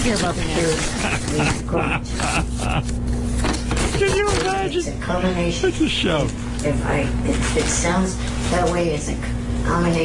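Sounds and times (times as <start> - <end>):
paper rustling: 0.0 - 4.8
steady low hum: 0.0 - 10.0.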